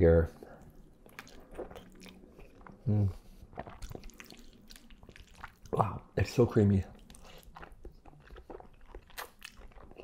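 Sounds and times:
chewing noodles: 0.3s - 6.1s, 6.9s - 10.0s
mouth clicks and smacks: 0.4s - 6.0s, 6.9s - 10.0s.

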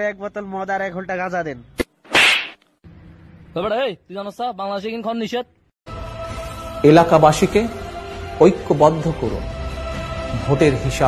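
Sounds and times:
loud slap: 1.8s - 2.6s.

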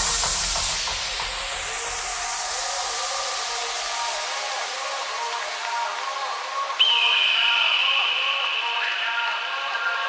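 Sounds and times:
hissing noise wash: 0.0s - 10.0s.

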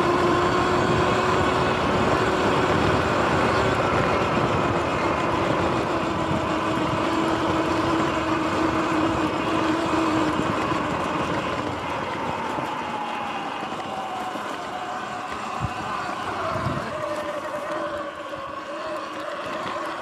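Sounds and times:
electric motor whining: 0.0s - 20.0s.

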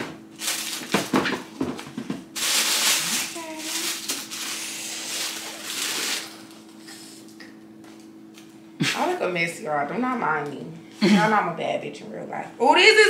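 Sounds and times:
faint steady hum: 0.0s - 13.0s
tissue paper rustling: 0.4s - 1.4s, 2.4s - 6.6s.

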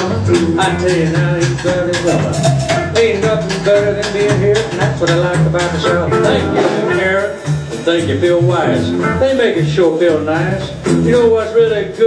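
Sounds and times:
country band playing: 0.0s - 12.0s
man speaking: 6.2s - 12.0s.

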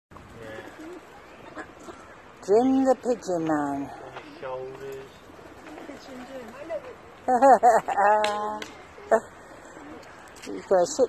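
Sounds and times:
pigeons cooing: 0.3s - 11.0s.

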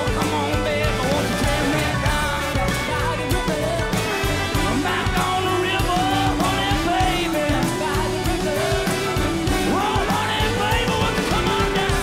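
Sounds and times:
live roots-rock band: 0.0s - 12.0s.

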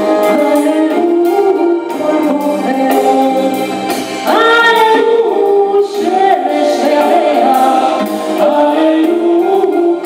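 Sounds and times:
bowed string instrument: 0.0s - 10.0s.

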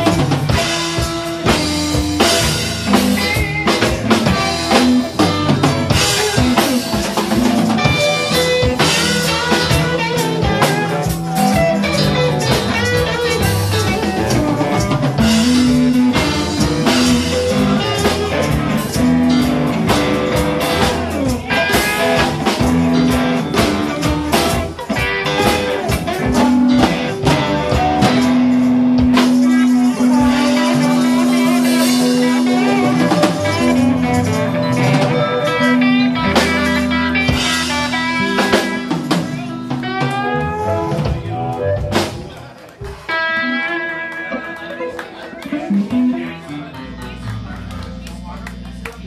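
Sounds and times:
drum kit shuffling beat: 0.0s - 49.0s
electric guitars: 0.0s - 49.0s.

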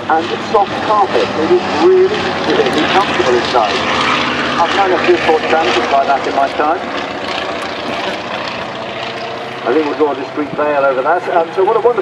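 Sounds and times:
radial aircraft engine and propeller: 0.0s - 12.0s.

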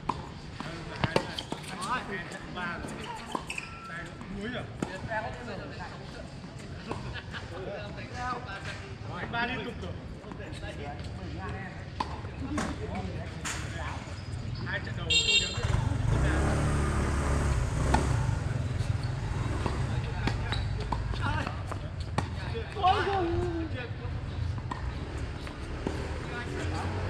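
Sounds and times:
tennis balls struck and bouncing: 0.0s - 2.0s, 17.8s - 18.4s, 19.5s - 23.2s, 24.5s - 26.1s
passing traffic rumble: 13.3s - 22.6s, 23.2s - 27.0s
car horn: 15.1s - 15.8s.

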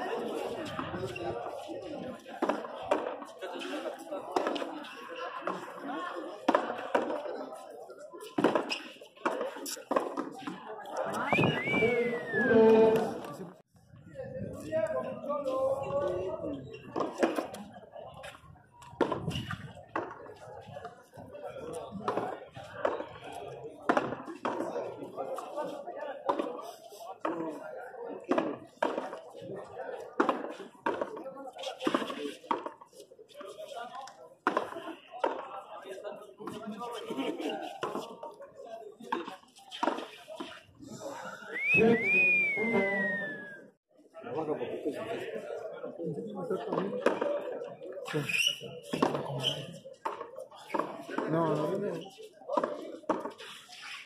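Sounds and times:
players' voices: 0.0s - 54.0s.

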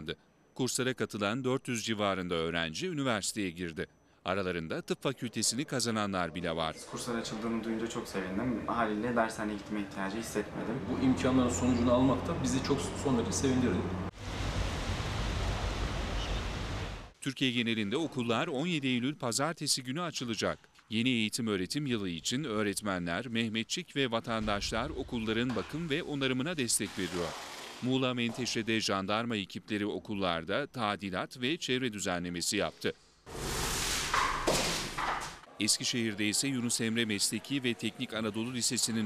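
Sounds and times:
sanding block scraping wall: 26.8s - 27.9s, 33.3s - 34.2s.

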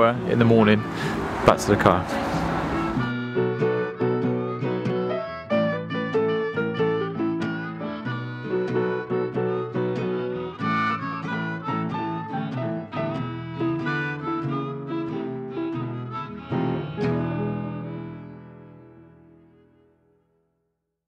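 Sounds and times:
plucked acoustic guitar music: 0.0s - 19.9s.

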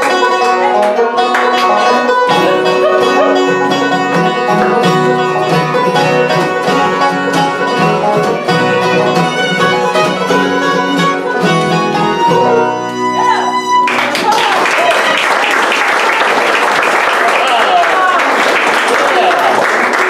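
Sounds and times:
banjo picking: 0.0s - 14.3s
bluegrass band playing: 0.0s - 15.9s.

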